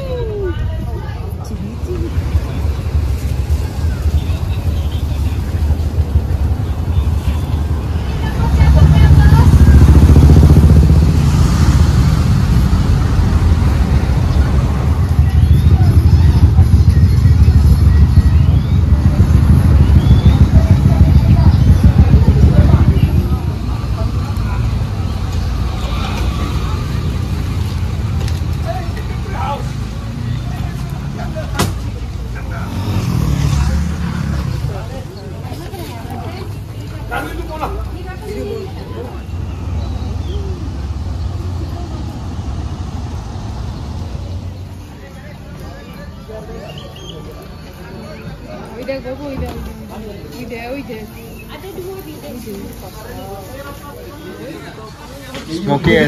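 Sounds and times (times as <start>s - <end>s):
engine low rumble: 0.0s - 46.6s
street voices: 0.0s - 56.0s.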